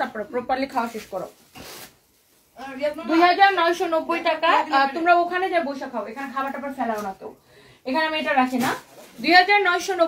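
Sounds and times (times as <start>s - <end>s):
woman speaking: 0.0s - 1.4s, 2.7s - 10.0s
fabric rustling: 0.1s - 3.5s, 7.9s - 10.0s.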